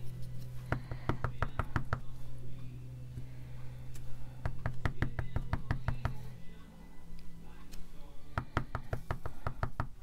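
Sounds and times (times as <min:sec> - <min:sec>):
stamp block knocking: 0:04.4 - 0:06.2.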